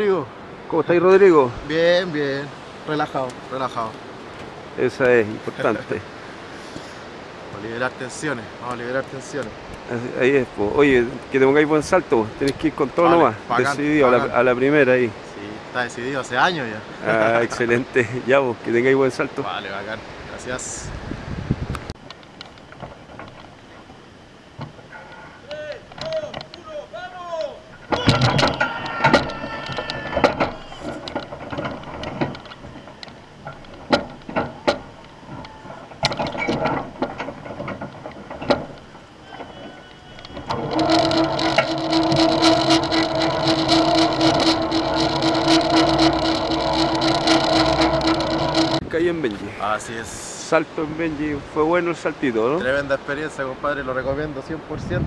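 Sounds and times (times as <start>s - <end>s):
metallic knocks and clanks: 27.8s - 39.5s, 40.2s - 48.8s
electric winch motor humming: 28.4s - 48.8s.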